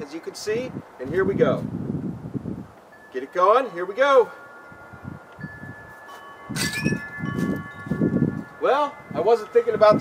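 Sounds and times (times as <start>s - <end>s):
wind chimes ringing: 2.9s - 10.0s.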